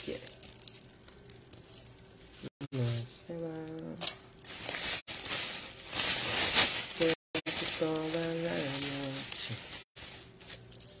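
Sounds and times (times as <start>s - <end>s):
plastic bag rustling: 4.4s - 11.0s.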